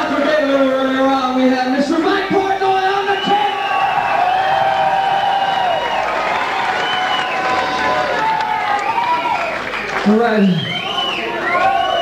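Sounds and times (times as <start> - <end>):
concert crowd cheering and shouting: 2.2 - 12.0
applause: 3.9 - 12.0.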